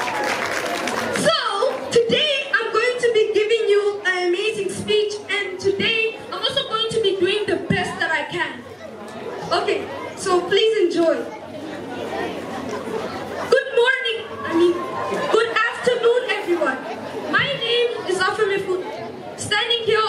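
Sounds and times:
chatter of voices: 0:00.0 - 0:20.0.

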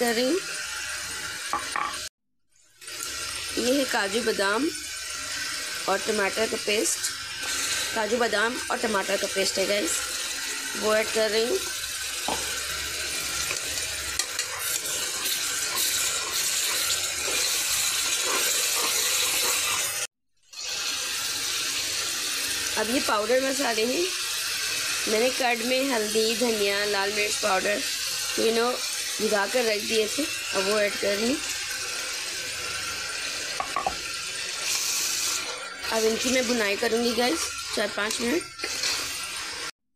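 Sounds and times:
paste sizzling in hot oil: 0:00.0 - 0:39.7
spoon stirring and scraping pot: 0:13.4 - 0:20.0
spoon knocking against pot: 0:33.6 - 0:34.0.

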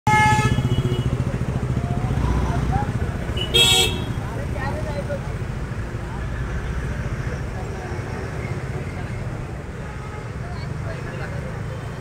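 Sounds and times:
street traffic: 0:00.0 - 0:12.0
vehicle horn honk: 0:00.1 - 0:01.2, 0:03.4 - 0:04.2.

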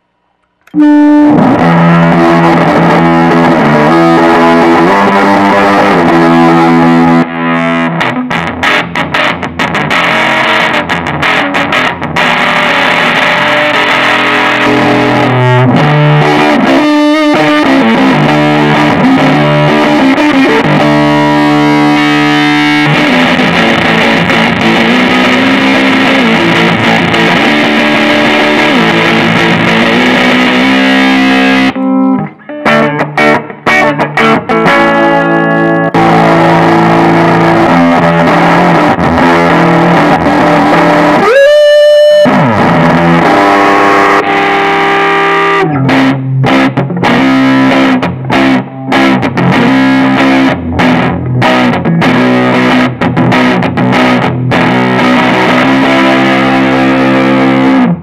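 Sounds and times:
clean electric guitar: 0:00.0 - 0:58.0
fuzz electric guitar: 0:00.0 - 0:58.0.

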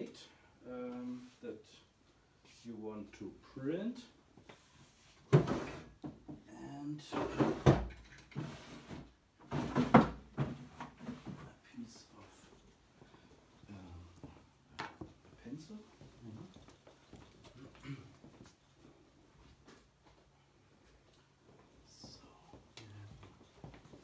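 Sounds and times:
objects knocking and rustling: 0:05.2 - 0:06.5, 0:07.1 - 0:11.5, 0:14.2 - 0:15.4
quiet indistinct voice: 0:21.9 - 0:23.2.

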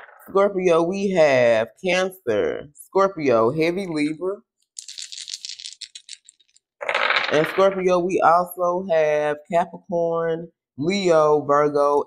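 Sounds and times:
cards being shuffled: 0:04.8 - 0:07.8.

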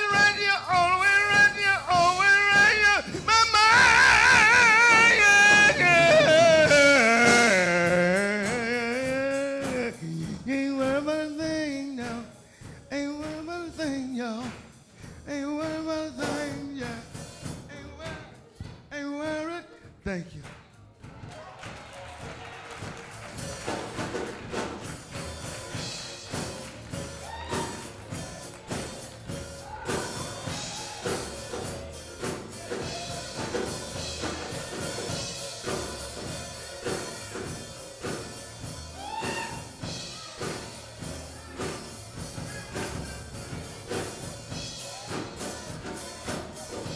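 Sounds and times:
man singing gospel song: 0:00.0 - 0:20.6, 0:27.7 - 0:38.8
church instrumental music with drums: 0:00.0 - 0:46.9.

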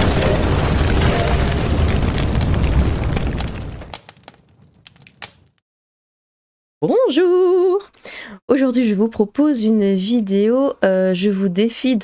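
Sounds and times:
low explosion rumble: 0:00.0 - 0:04.8
fire crackles: 0:00.0 - 0:05.6.

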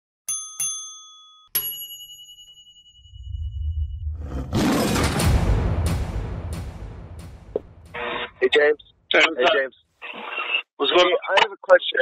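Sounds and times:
bell dings: 0:00.3 - 0:03.5
low rumble: 0:03.1 - 0:08.8.

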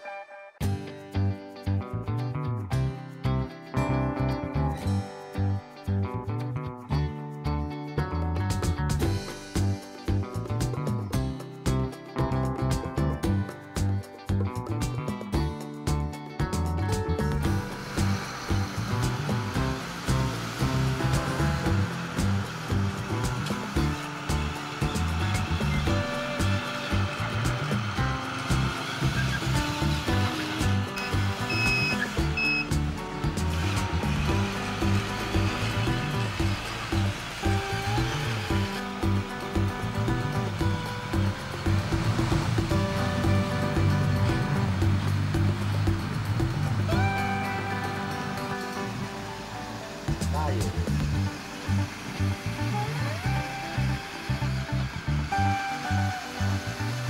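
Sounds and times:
background music with steady beat: 0:00.0 - 0:57.0.

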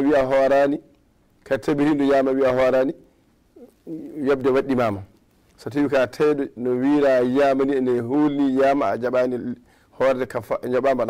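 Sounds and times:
man speaking: 0:00.0 - 0:00.9, 0:01.5 - 0:03.0, 0:03.6 - 0:11.0.

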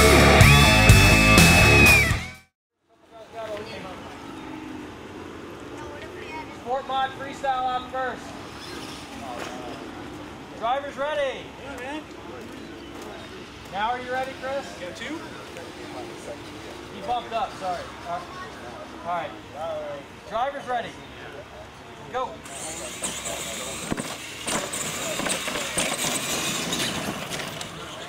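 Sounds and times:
rock music with electric guitar: 0:00.0 - 0:02.5.

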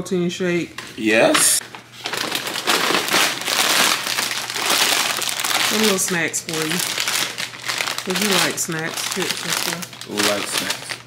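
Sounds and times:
paper bag rustling: 0:01.6 - 0:11.0
plastic chip bag crinkling: 0:01.6 - 0:11.0.

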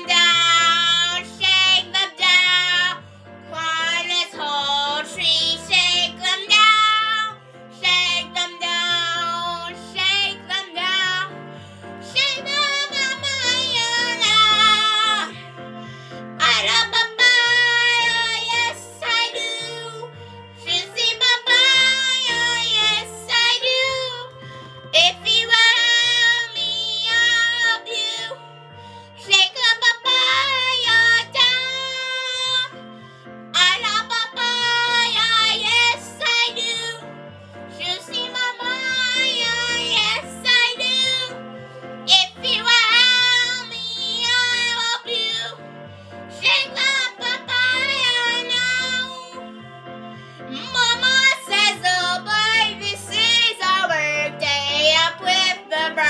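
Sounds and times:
child singing along: 0:00.0 - 0:11.3, 0:12.0 - 0:15.4, 0:16.4 - 0:24.3, 0:25.0 - 0:28.4, 0:29.2 - 0:32.7, 0:33.6 - 0:37.0, 0:37.8 - 0:41.4, 0:42.1 - 0:45.6, 0:46.4 - 0:49.4, 0:50.6 - 0:56.0
song with high vibrato vocals: 0:00.0 - 0:56.0.

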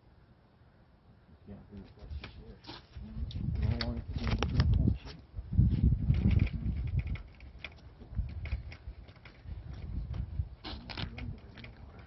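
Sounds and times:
wind rumble on microphone: 0:02.0 - 0:12.0
walker clicks and scuffs: 0:06.3 - 0:11.8
shuffling footsteps on asphalt: 0:07.5 - 0:12.0.

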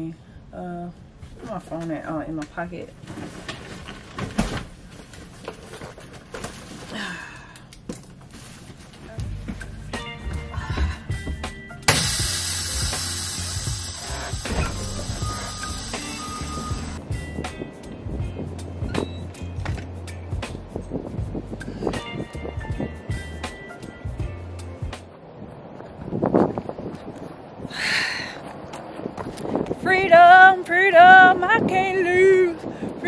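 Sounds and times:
music with deep beat: 0:09.2 - 0:25.1
loud hiss: 0:11.9 - 0:17.0.

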